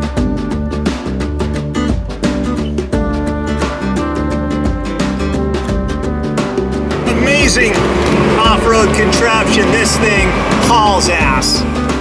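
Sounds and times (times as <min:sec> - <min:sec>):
engine and road noise: 0:05.4 - 0:12.0
man talking: 0:07.0 - 0:11.7.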